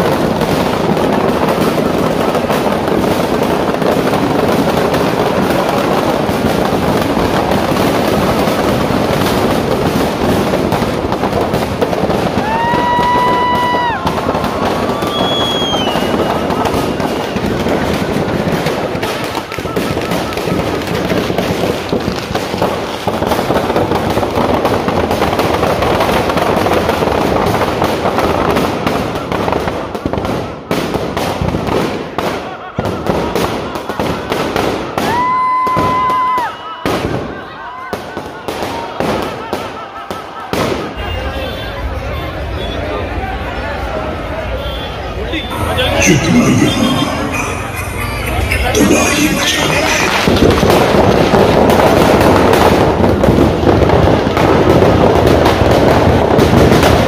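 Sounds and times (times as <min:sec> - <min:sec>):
firecrackers crackling and popping: 0:00.0 - 0:42.6, 0:43.4 - 0:57.0
whistle-like tone: 0:15.0 - 0:16.4.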